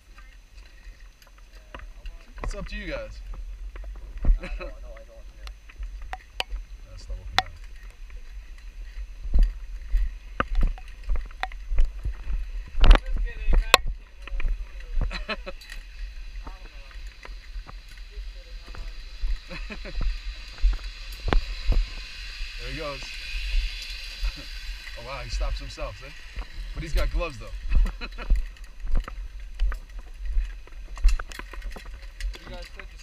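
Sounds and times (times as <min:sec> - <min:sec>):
zipline trolley whirring: 0:00.0 - 0:33.0.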